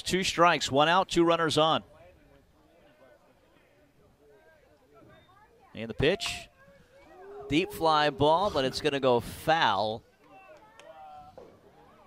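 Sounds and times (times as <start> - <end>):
distant chatter of voices: 6.2 - 9.1.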